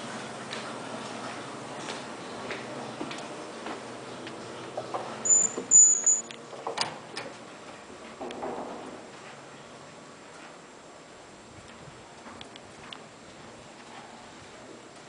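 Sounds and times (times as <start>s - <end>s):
short high electronic beeps: 5.2s - 6.3s.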